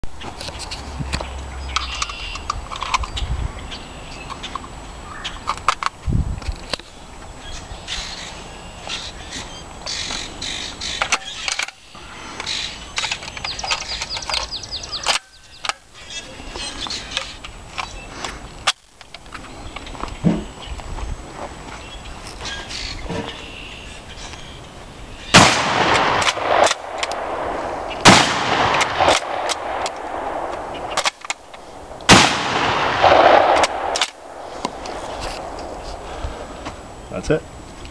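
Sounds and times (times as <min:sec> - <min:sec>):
shotgun loading clicks: 0:00.4 - 0:03.2, 0:05.4 - 0:06.8, 0:10.9 - 0:11.8, 0:12.4 - 0:15.8, 0:25.4 - 0:35.8
shotgun blasts with echo: 0:25.3 - 0:31.2, 0:32.0 - 0:35.5
shotgun bolt worked: 0:25.4 - 0:27.4, 0:28.0 - 0:35.6.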